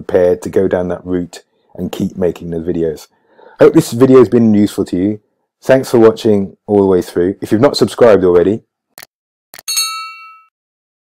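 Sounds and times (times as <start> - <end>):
bright bell ding: 9.7 - 10.5.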